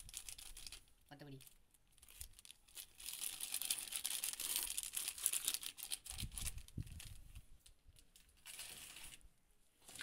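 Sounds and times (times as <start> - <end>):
plastic sachet crinkling: 0.0 - 9.3.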